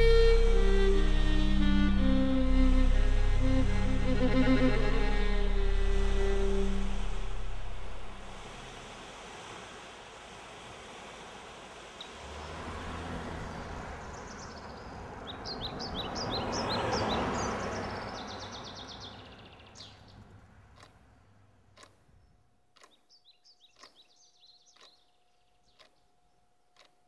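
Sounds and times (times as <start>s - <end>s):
bowed-string music: 0.0s - 8.8s
vehicle passing: 0.0s - 9.4s, 12.0s - 19.4s
small bird chirping: 17.7s - 20.9s, 21.8s - 27.0s.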